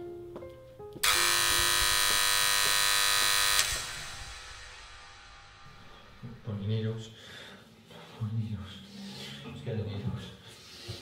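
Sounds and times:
soft piano notes: 0.0s - 1.0s
harsh electric alarm buzzer: 1.0s - 5.6s.

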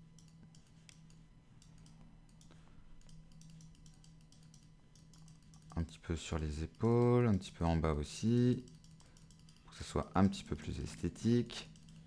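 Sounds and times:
low steady hum: 0.0s - 12.0s
computer mouse clicking: 0.2s - 7.6s, 8.5s - 12.0s.

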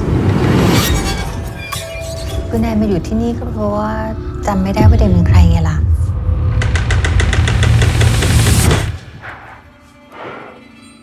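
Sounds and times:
deep rumbling drone: 2.6s - 9.0s.

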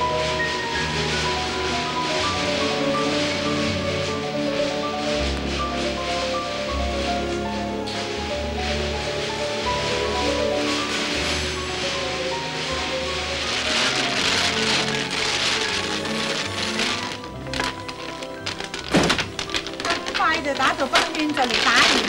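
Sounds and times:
steady hiss: 0.0s - 22.0s.

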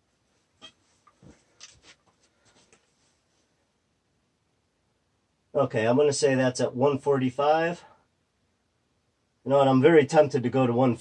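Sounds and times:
faint knocks and rustles: 0.0s - 3.6s.

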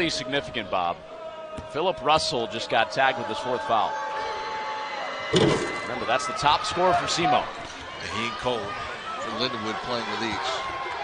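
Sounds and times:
arena crowd noise: 0.0s - 11.0s
loud thump: 5.4s - 5.9s.

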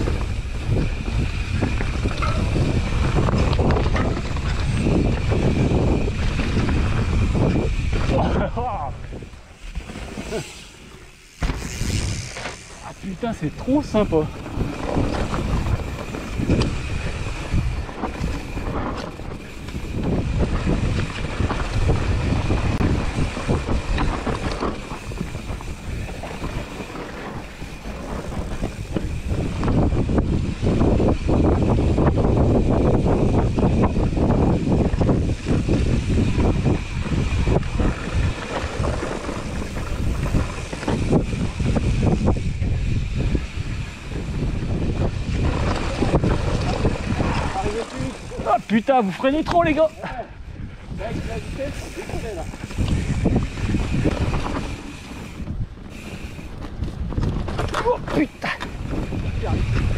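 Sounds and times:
wind buffeting microphone: 0.0s - 10.6s, 11.2s - 59.9s
tyres rolling over dirt: 0.0s - 50.2s
bike rattling over bumps: 0.0s - 59.9s.

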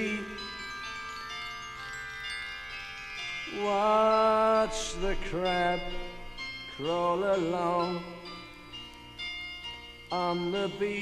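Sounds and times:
sustained ringing tones: 0.0s - 11.0s.

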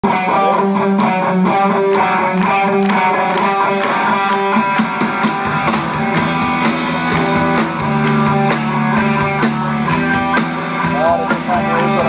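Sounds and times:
drums: 0.0s - 12.0s
guitar notes: 0.0s - 12.0s
lower bass notes: 4.7s - 12.0s.

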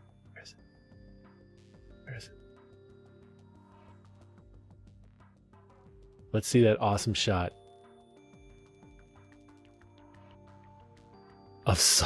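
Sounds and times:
movie trailer music: 0.0s - 12.0s.

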